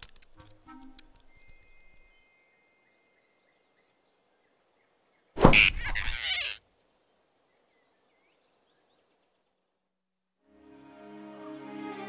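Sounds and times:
faint forest ambience: 0:00.0 - 0:12.0
cartoon whoosh and thump: 0:05.4 - 0:06.2.

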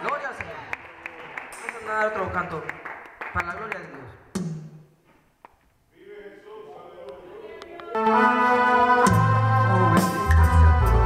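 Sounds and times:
organ-voiced keyboard chords: 0:06.2 - 0:11.0
low bass notes: 0:08.8 - 0:11.0.

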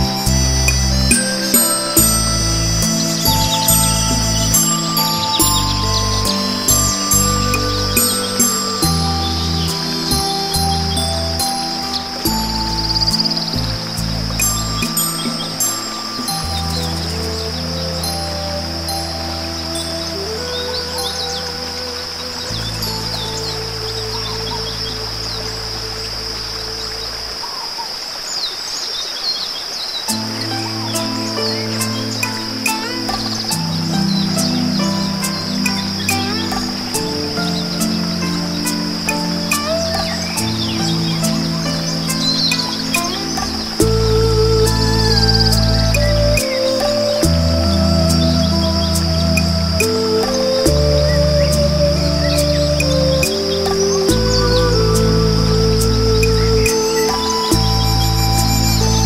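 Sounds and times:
slow meditation music: 0:00.0 - 0:29.0, 0:29.8 - 0:59.0
birdsong chirps: 0:00.0 - 0:59.0
steady high hiss: 0:00.0 - 0:59.0.

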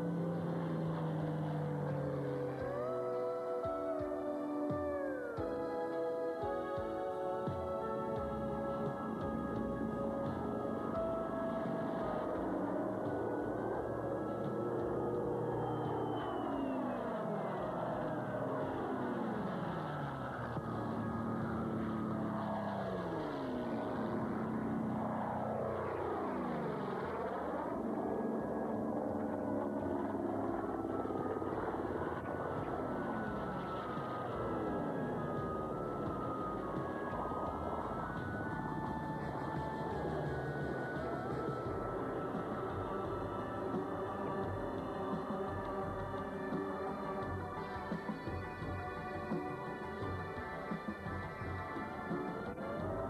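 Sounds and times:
propeller planes passing low: 0:00.0 - 0:53.0.

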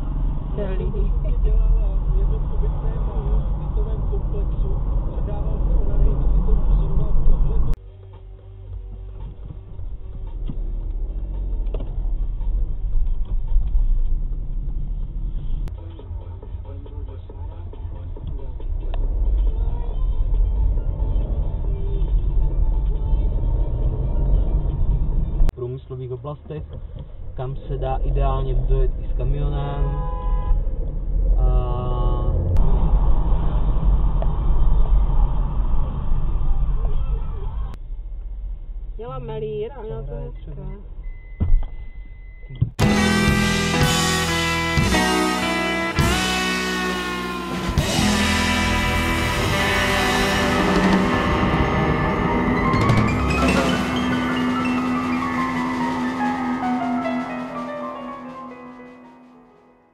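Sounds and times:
car engine and tyres rumbling: 0:00.0 - 0:59.2
car horn: 0:29.7 - 0:30.7, 0:42.8 - 0:59.8.

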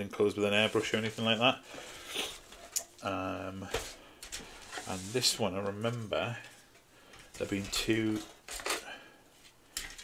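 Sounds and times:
plastic sprues clattering on table: 0:07.2 - 0:09.0.

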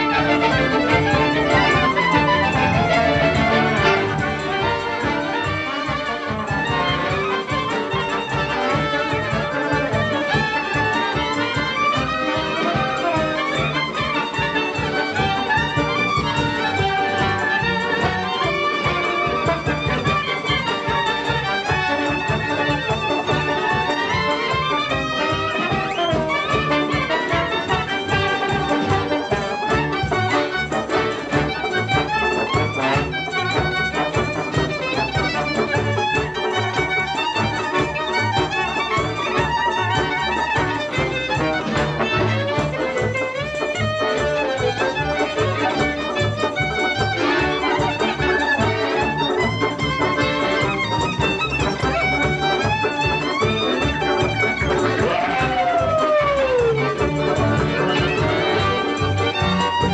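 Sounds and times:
accordion: 0:00.0 - 0:59.9
double bass: 0:00.0 - 0:59.9
drums: 0:00.0 - 0:59.9
klezmer band playing: 0:00.0 - 0:59.9
violin melody: 0:00.0 - 0:59.9.

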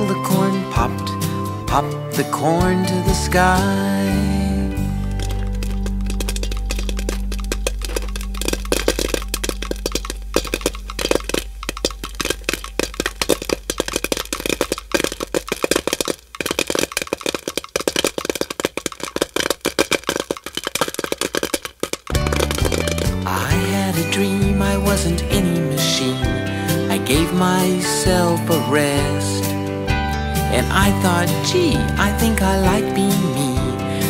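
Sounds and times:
popcorn popping: 0:03.1 - 0:25.6.

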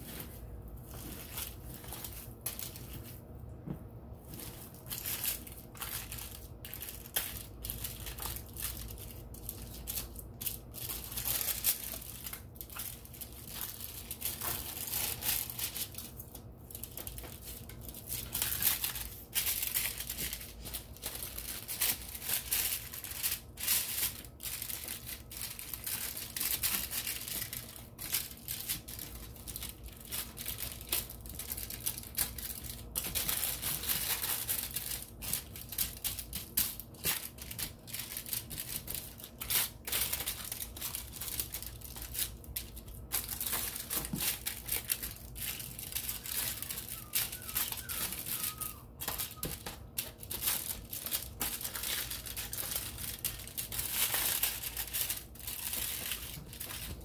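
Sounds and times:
aluminium foil crinkling: 0:00.0 - 0:03.4, 0:04.1 - 0:57.0.

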